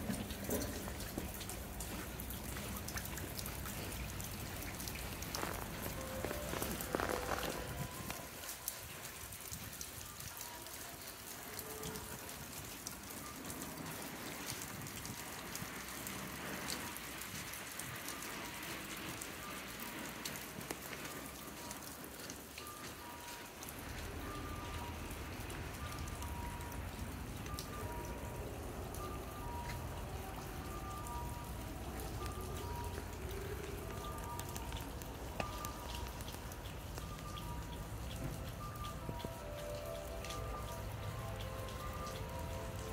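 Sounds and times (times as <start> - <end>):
irregular drips: 0.0 - 42.9
rain falling: 0.0 - 42.9
soft music of slow notes: 0.0 - 42.9.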